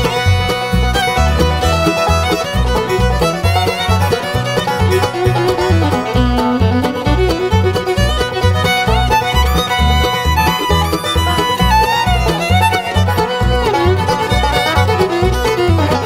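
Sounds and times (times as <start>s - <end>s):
banjo: 0.0s - 16.0s
bass notes: 0.0s - 16.0s
fiddle playing lead: 0.0s - 16.0s
guitar: 0.0s - 16.0s.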